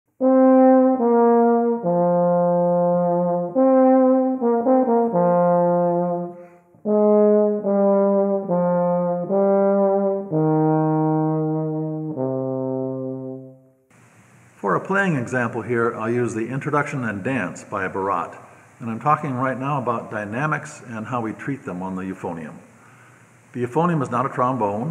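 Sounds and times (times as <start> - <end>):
euphonium melody: 0.2 - 13.8
player breathing: 6.3 - 6.8, 18.4 - 18.8, 22.7 - 23.5.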